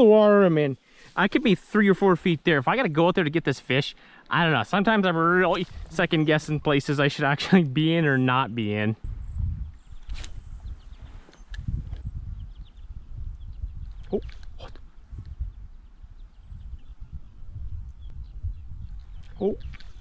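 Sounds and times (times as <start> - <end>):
low rumble on microphone: 9.0 - 20.0.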